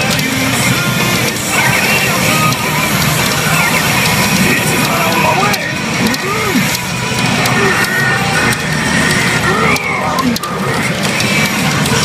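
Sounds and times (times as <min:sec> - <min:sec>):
pachinko machine music: 0:00.0 - 0:12.0
scattered clicks: 0:00.0 - 0:12.0.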